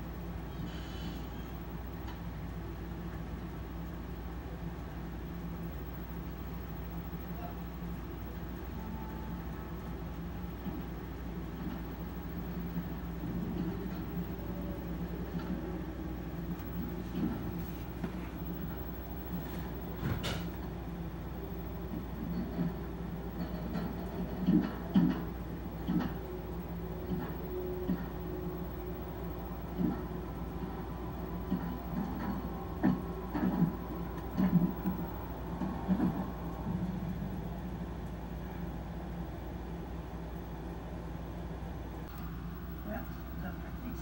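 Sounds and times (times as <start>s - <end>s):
low hum: 0.0s - 44.0s.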